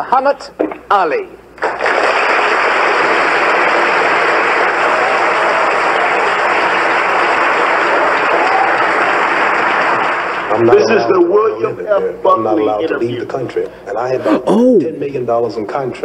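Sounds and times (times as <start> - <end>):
studio audience applauding: 1.6 - 11.2.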